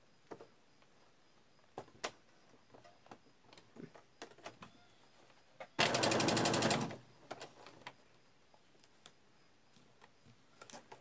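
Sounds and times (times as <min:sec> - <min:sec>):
sewing machine stitching: 0:05.8 - 0:07.0.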